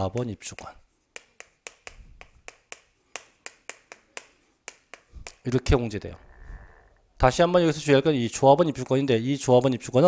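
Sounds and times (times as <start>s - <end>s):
chalk tapping on chalkboard: 0.0s - 5.8s.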